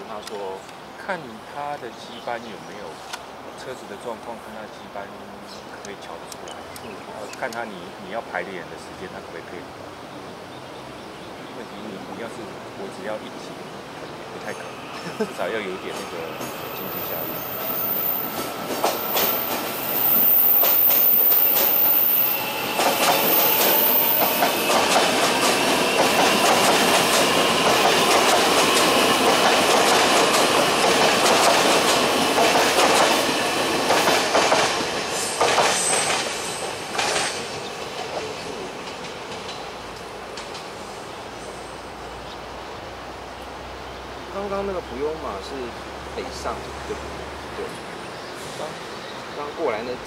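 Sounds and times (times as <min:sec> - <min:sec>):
electric train passing: 0:11.2 - 0:43.8
high wheel squeal: 0:14.4 - 0:26.0.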